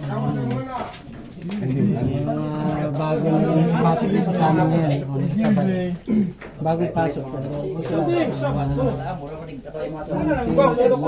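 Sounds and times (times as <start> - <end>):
men's voices in crowded room: 0.0 - 11.0.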